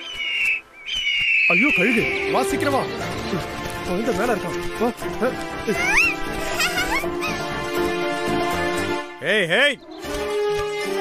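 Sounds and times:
background music: 0:01.5 - 0:11.0.

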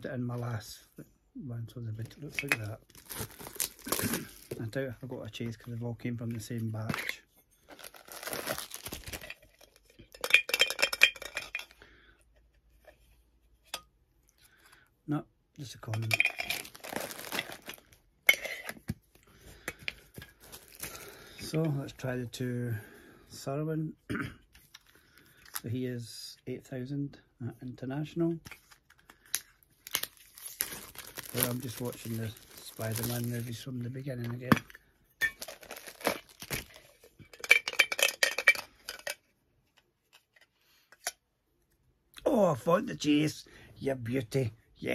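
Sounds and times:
packaging crinkling: 0:02.3 - 0:04.7, 0:07.6 - 0:09.8, 0:16.2 - 0:18.0, 0:20.4 - 0:21.3, 0:28.6 - 0:33.6, 0:35.3 - 0:37.1
metal can clinking and rattling: 0:09.0 - 0:11.8, 0:15.9 - 0:18.8, 0:36.6 - 0:39.2.

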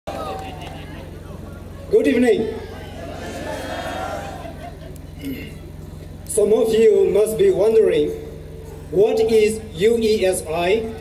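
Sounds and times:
faint voices: 0:00.1 - 0:06.3
low electrical hum: 0:00.1 - 0:11.0
man speaking over loudspeakers: 0:01.2 - 0:02.6, 0:06.3 - 0:11.0.

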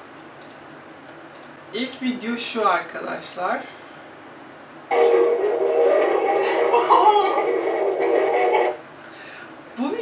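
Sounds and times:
thin radio-like held tones: 0:04.9 - 0:08.8.

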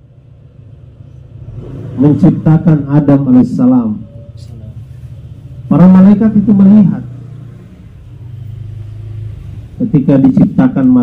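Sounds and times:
low engine-like hum: 0:00.0 - 0:11.0.

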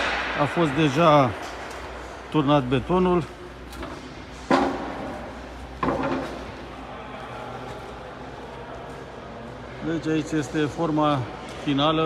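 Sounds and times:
sharp bang echoing in tunnel: 0:00.0 - 0:01.7.

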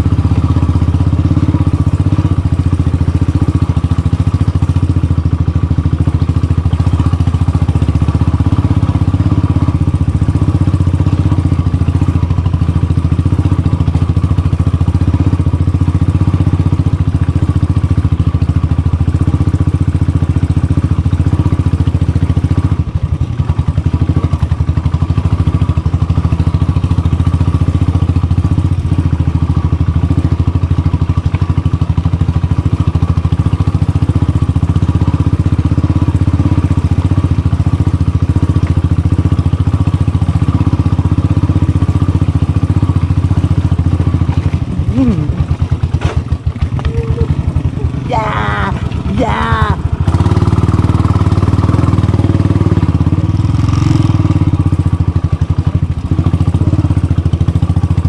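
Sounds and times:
motorcycle engine running at low speed: 0:00.0 - 0:58.0.

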